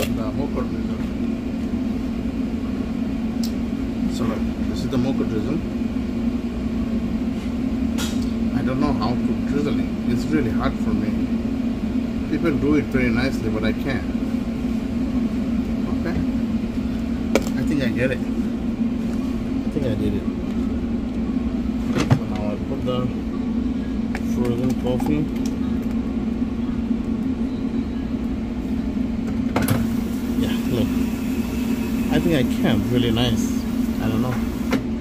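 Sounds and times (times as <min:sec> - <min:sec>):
low machine hum: 0:00.0 - 0:35.0.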